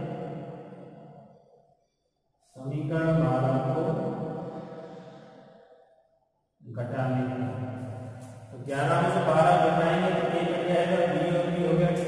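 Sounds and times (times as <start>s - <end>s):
man chanting: 8.5s - 12.0s.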